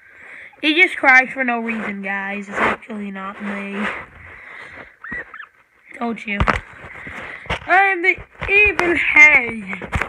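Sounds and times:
guinea pig squeaking: 5.0s - 5.5s.

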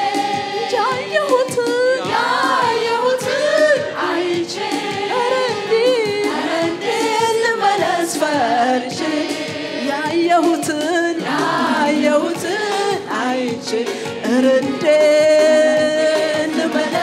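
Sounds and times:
group singing: 0.0s - 17.0s
woman singing lead: 0.0s - 17.0s.

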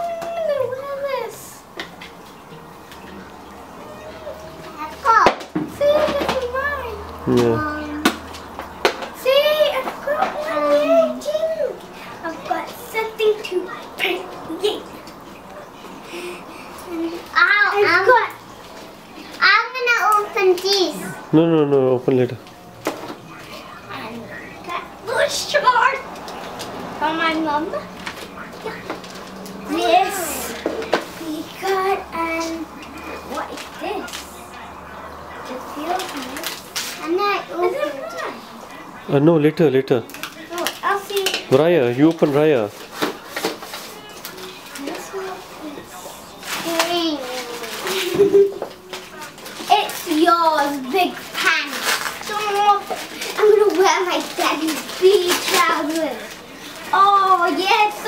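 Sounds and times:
plastic wrap rustling: 0.4s - 38.9s, 39.6s - 58.0s.

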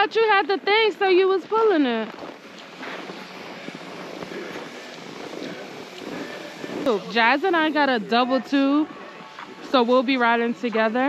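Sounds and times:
distant voices murmuring: 0.0s - 11.0s
low outdoor background noise: 0.0s - 11.0s.

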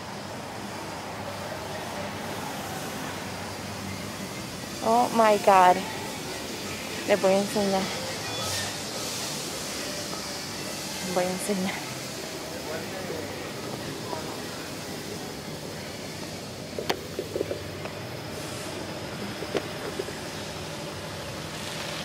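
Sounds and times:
faint distant voices: 0.0s - 21.5s.

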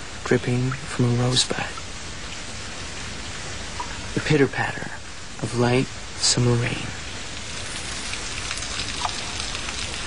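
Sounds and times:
light rain patter: 0.0s - 10.0s.

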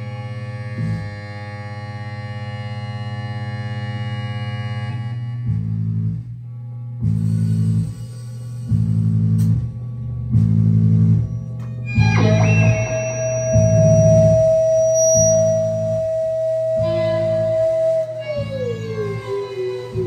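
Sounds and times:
low bass notes: 0.0s - 20.0s
sustained many-toned drone: 11.4s - 20.0s.

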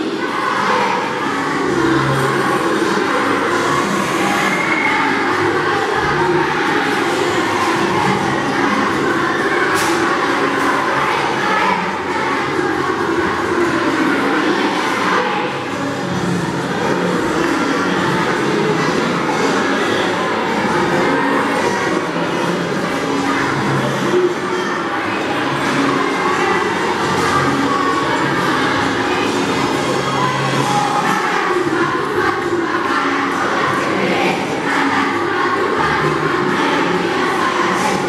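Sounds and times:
children singing a carol: 0.0s - 38.0s.

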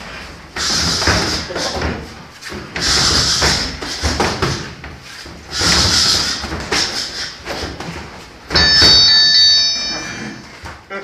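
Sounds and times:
electronic timer ringing tone: 8.6s - 10.4s.

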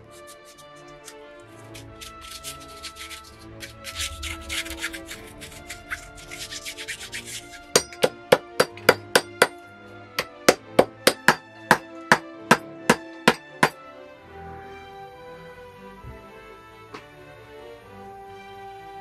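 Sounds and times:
brush scrubbing leather: 0.0s - 5.0s.

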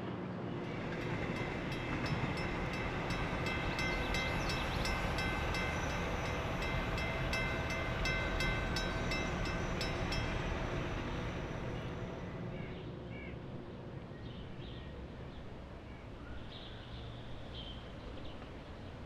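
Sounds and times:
distant train rumble: 0.2s - 18.9s
steady high tones: 0.7s - 12.6s.

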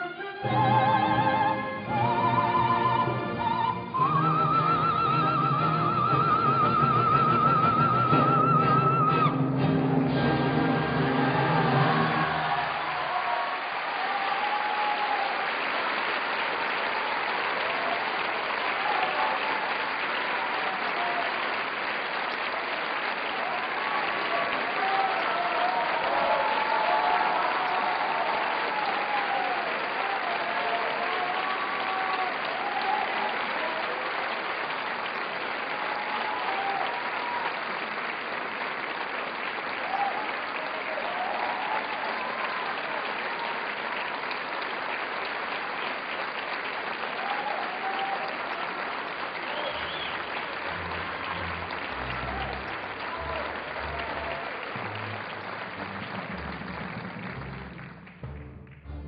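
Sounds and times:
audience applauding: 0.0s - 59.0s.

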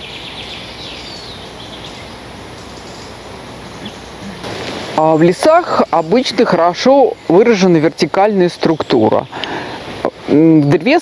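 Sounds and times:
faint bird chirp: 0.0s - 7.5s
background hiss: 0.0s - 11.0s.

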